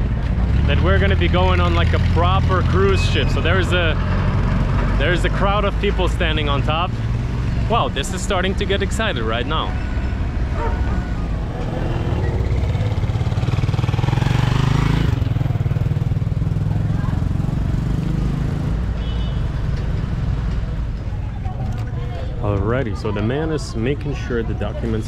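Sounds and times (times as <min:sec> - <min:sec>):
engine rumbling: 0:00.0 - 0:25.0.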